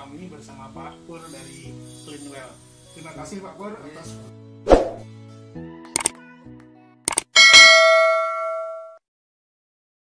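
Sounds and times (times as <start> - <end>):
mouse double-click: 6.0 - 6.2, 7.1 - 7.3
notification bell ding: 7.4 - 9.0.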